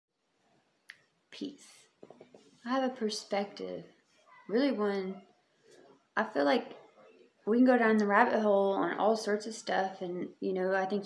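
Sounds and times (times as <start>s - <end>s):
woman speaking: 1.4s - 2.0s, 2.6s - 5.3s, 6.2s - 6.8s, 7.5s - 11.0s.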